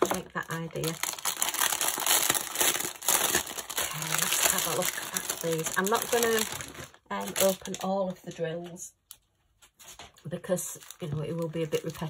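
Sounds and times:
plastic packaging crinkling: 0.0s - 8.3s, 9.1s - 12.0s.

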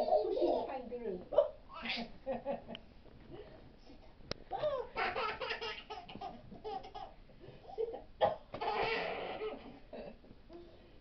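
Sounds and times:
baby laughing: 0.0s - 0.7s, 4.7s - 7.2s, 8.6s - 9.7s.

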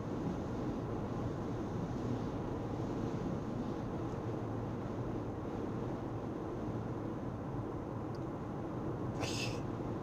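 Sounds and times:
road and engine noise in car: 0.0s - 10.0s.

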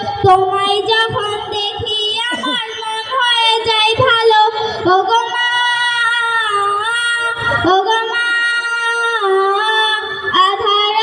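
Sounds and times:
child singing through pa system: 0.2s - 11.0s.

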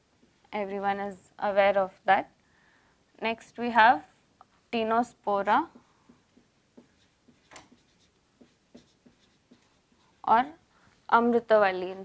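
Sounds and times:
marker pen squeaking on whiteboard: 6.3s - 10.3s.

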